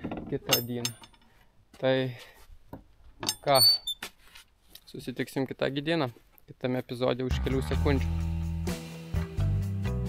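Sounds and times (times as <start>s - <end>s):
man saying words: 6.0s - 8.2s.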